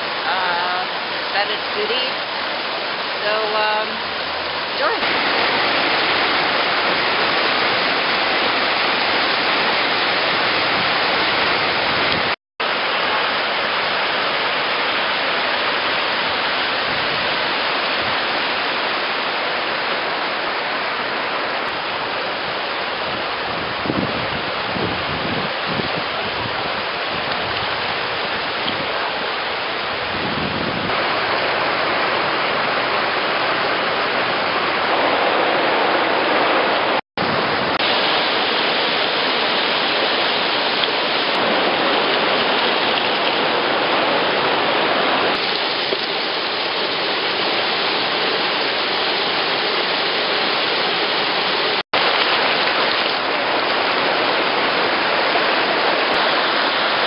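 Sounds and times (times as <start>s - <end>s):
river water rushing: 0.0s - 57.0s.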